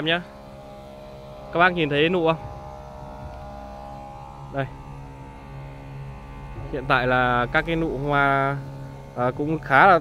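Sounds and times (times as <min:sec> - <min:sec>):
small motor humming: 0:00.0 - 0:10.0.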